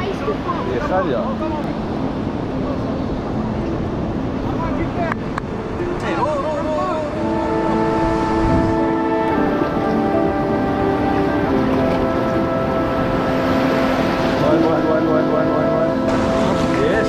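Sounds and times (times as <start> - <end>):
slow sustained chords music: 0.0 - 17.0
surf washing: 0.0 - 17.0.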